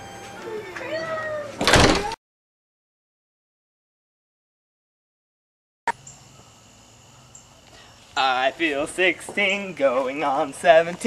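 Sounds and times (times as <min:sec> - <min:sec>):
glass door closing with bang: 0:01.6 - 0:02.2.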